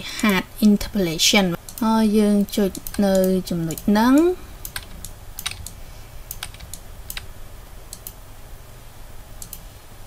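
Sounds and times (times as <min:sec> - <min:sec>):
faint low hum: 0:00.0 - 0:10.0
computer mouse clicks: 0:01.6 - 0:01.9, 0:02.6 - 0:07.3, 0:07.9 - 0:08.2, 0:09.4 - 0:09.7.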